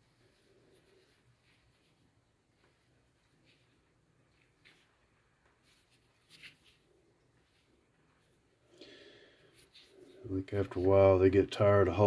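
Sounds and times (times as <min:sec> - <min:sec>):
scratchy stone rustles: 0:00.0 - 0:08.6, 0:09.4 - 0:11.5.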